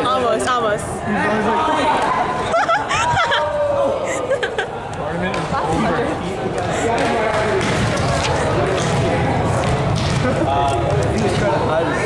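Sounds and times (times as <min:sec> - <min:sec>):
indistinct talking: 0:00.0 - 0:12.0
ball bouncing on court floor: 0:07.0 - 0:10.4.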